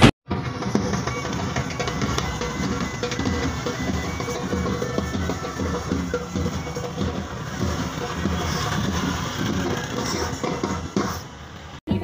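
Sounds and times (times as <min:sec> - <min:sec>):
music with drums: 0:00.3 - 0:12.0.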